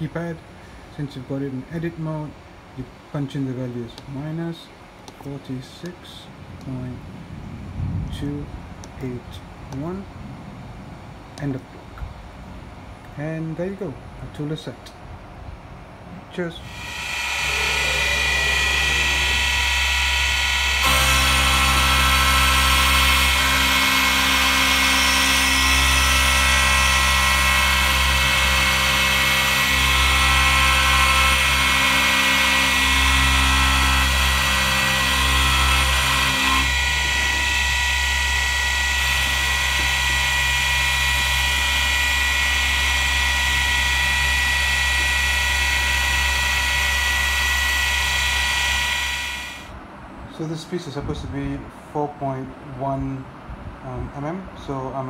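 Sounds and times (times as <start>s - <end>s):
milling machine cutting metal: 16.6s - 49.7s.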